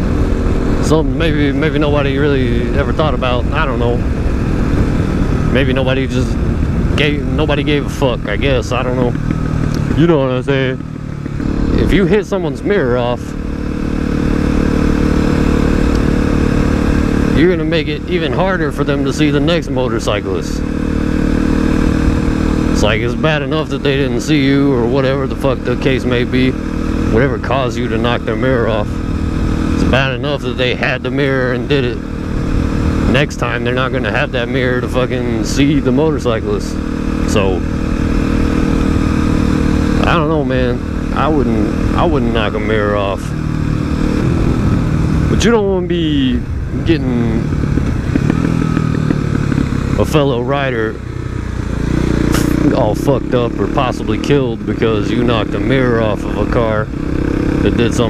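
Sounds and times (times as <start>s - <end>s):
low rumble on microphone: 0.0s - 20.6s, 37.3s - 57.0s
motorcycle engine cruising: 0.0s - 58.0s.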